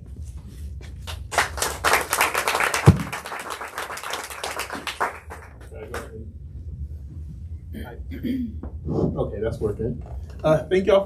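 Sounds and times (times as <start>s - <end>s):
audience applauding: 1.1s - 6.1s.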